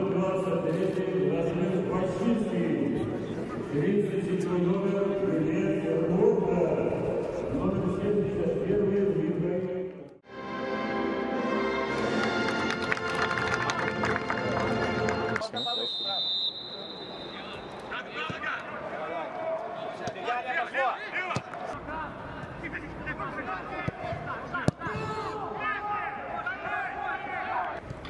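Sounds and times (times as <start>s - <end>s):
music: 10.3s - 15.4s
short high whistle blast: 15.6s - 17.5s
footballers shouting: 22.8s - 27.8s.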